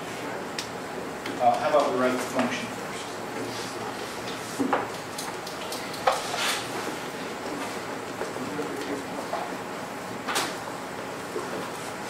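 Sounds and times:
room noise: 0.0s - 12.0s.

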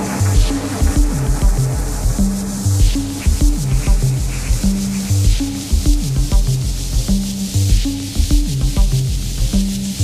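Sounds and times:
acid techno bass line: 0.0s - 10.0s
drum machine beat: 0.0s - 10.0s.

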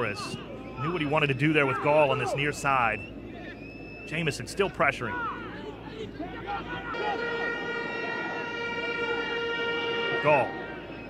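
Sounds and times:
stadium crowd noise: 0.0s - 11.0s
horn long steady note: 6.7s - 11.0s.

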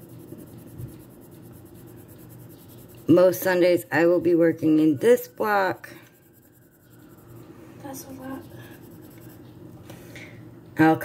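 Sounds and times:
pencil scratching on paper: 0.0s - 9.5s.

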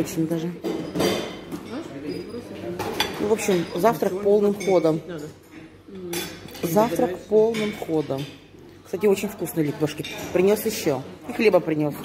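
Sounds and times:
tableware clink: 0.6s - 8.5s, 9.8s - 11.0s
murmur of voices: 1.6s - 12.0s.

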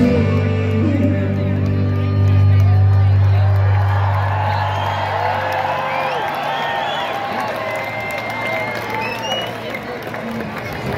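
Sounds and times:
crowd cheering and whooping: 2.4s - 10.9s.

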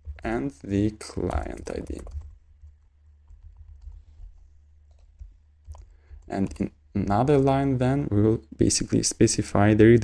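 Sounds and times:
low steady hum: 0.0s - 10.0s
computer keyboard typing: 1.1s - 6.7s.

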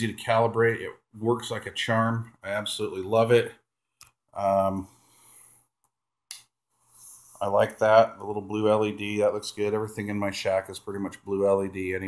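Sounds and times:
faint breath: 4.8s - 5.8s.

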